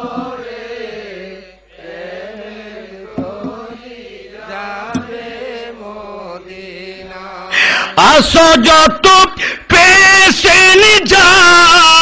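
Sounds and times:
chant-like singing: 0:00.0 - 0:08.0.

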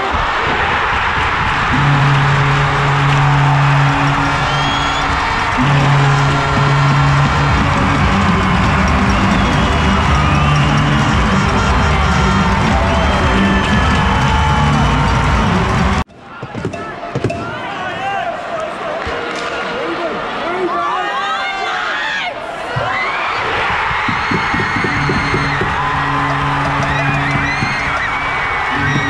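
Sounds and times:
crowd cheering and shouting: 0:00.0 - 0:29.0
music with low bass notes: 0:01.5 - 0:16.0, 0:24.5 - 0:28.0, 0:28.7 - 0:29.0.

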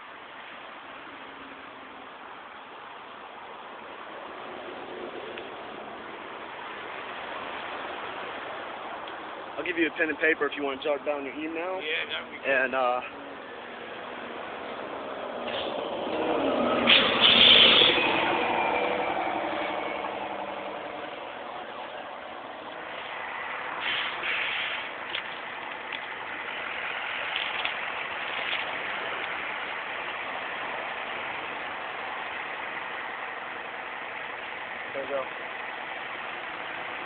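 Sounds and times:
traffic noise: 0:00.0 - 0:37.0
large vehicle passing: 0:11.9 - 0:37.0
short hissing bursts: 0:23.8 - 0:25.0.

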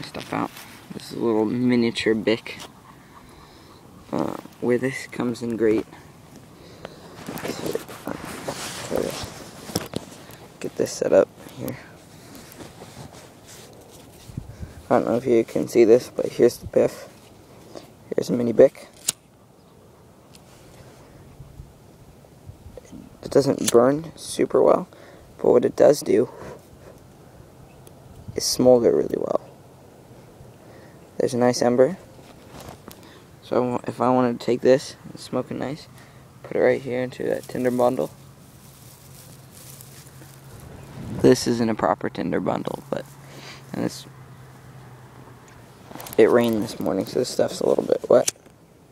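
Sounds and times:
dry grass rustling: 0:00.0 - 0:22.8, 0:31.6 - 0:34.1, 0:35.0 - 0:48.8
hands handling noise: 0:04.1 - 0:14.5, 0:37.3 - 0:41.4, 0:45.5 - 0:48.6.

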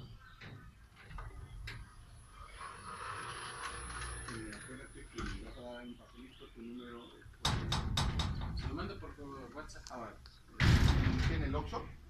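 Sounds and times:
gate opener motor whirring: 0:02.4 - 0:04.7.

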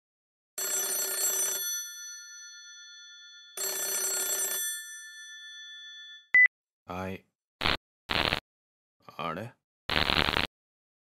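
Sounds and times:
telephone ringing: 0:00.6 - 0:06.4.

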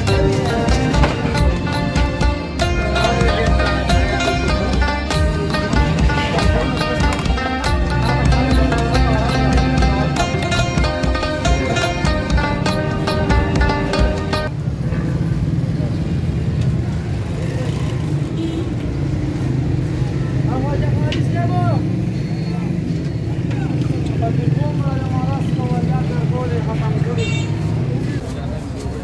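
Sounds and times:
men talking: 0:00.0 - 0:14.4, 0:20.4 - 0:22.0, 0:23.3 - 0:29.0
background music: 0:00.0 - 0:14.5.

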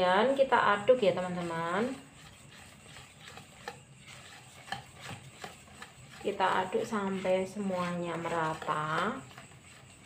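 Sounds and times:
whisk scraping plastic bowl: 0:00.0 - 0:10.0.

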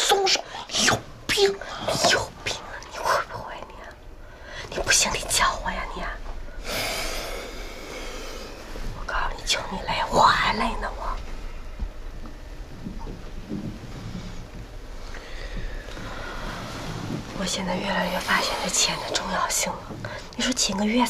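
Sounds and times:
breathy hiss: 0:01.5 - 0:12.7, 0:13.8 - 0:20.7.

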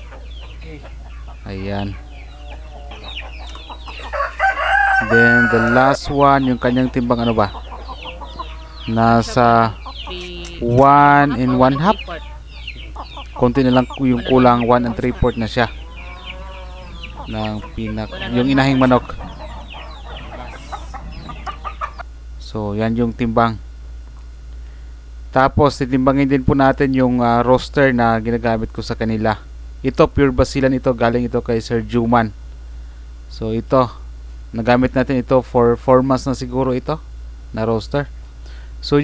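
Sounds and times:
rooster crowing: 0:00.0 - 0:22.0
chickens clucking: 0:00.0 - 0:22.1
steady low hum: 0:00.0 - 0:39.0.

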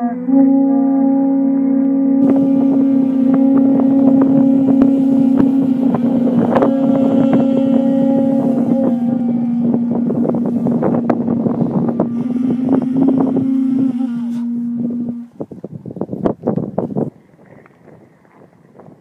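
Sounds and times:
conch shell trumpets blowing: 0:00.0 - 0:15.4.

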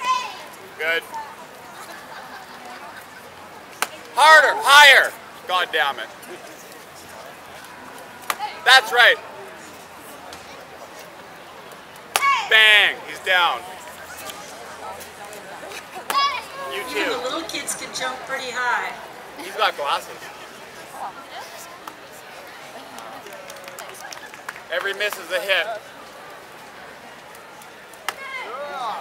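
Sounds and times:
child shouting: 0:00.0 - 0:00.4, 0:12.2 - 0:12.5, 0:16.1 - 0:16.9
outdoor crowd chatter: 0:00.0 - 0:29.0.

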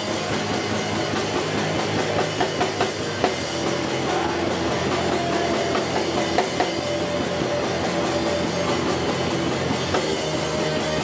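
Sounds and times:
drum kit: 0:00.0 - 0:11.0
electric guitars: 0:00.0 - 0:11.0
live rock band playing: 0:00.0 - 0:11.0.

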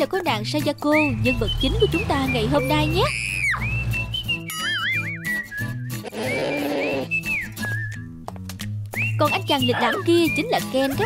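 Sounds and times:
light background music with bass: 0:00.0 - 0:11.0
cartoon whistle sound effects: 0:03.0 - 0:07.8.

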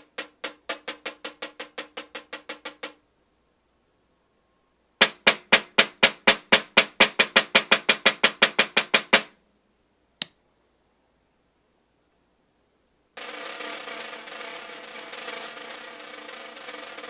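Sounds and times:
snare drum struck with stick: 0:05.0 - 0:09.3.

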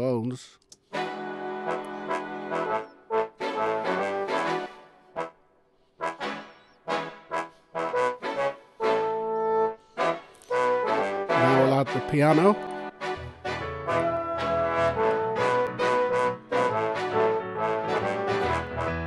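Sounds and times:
big-band brass chords and stabs: 0:10.0 - 0:19.0.

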